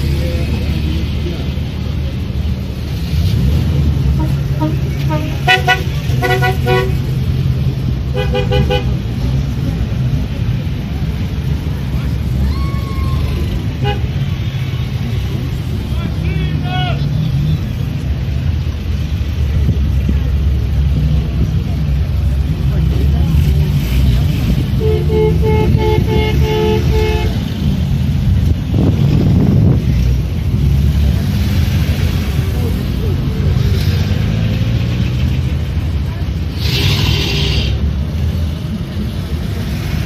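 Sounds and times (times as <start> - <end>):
car engines rumbling past: 0.0 - 40.0
two-tone car horn toots: 24.8 - 27.4.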